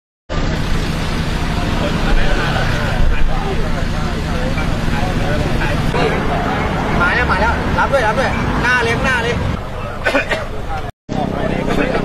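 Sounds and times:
idling vehicle engines: 0.3s - 12.0s
people talking: 1.0s - 12.0s.

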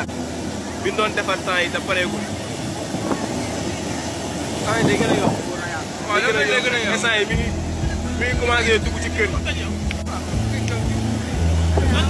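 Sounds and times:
man talking: 4.6s - 12.0s.

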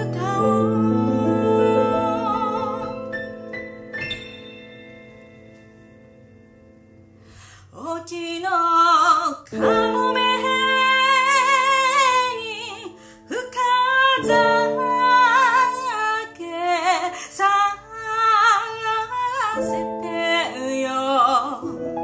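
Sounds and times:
person singing with vibrato: 0.0s - 3.5s, 7.5s - 21.9s
piano chords: 0.0s - 22.0s.

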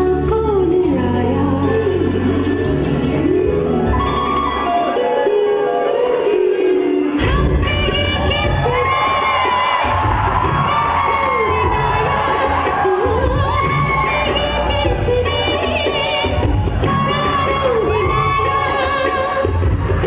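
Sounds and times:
audience cheering and shouting: 2.4s - 20.0s.

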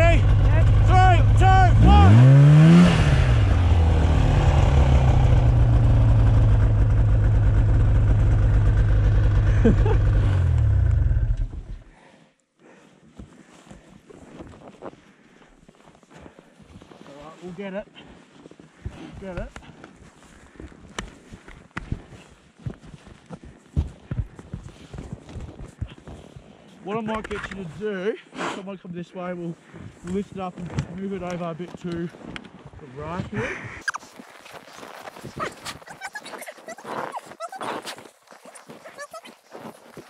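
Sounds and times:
snowmobile engine at high throttle: 0.0s - 11.7s.

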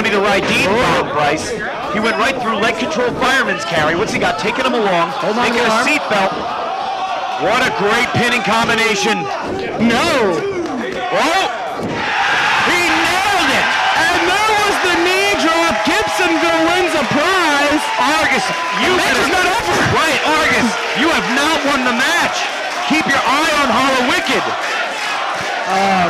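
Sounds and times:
crowd shouting and cheering: 0.0s - 26.0s.

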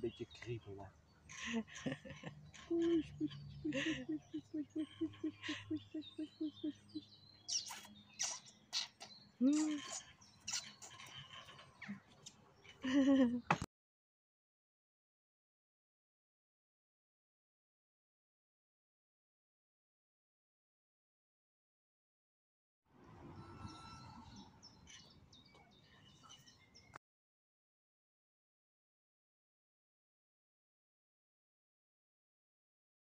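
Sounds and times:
faint bird chirps: 0.0s - 13.7s, 23.0s - 27.0s.

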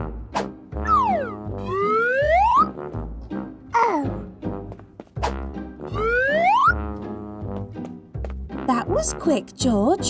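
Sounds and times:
children's background music: 0.0s - 10.0s.

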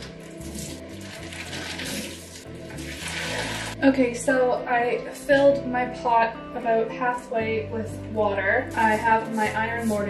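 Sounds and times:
tap water filling a pot: 0.0s - 3.8s.

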